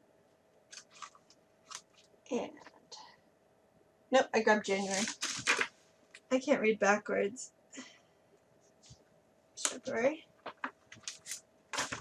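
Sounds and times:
plastic sheet crinkling: 0:00.7 - 0:02.1, 0:04.7 - 0:05.8, 0:10.4 - 0:12.0.

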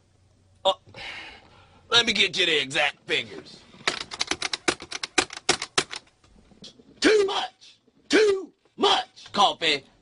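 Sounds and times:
keys tapping rapidly: 0:03.8 - 0:06.1.

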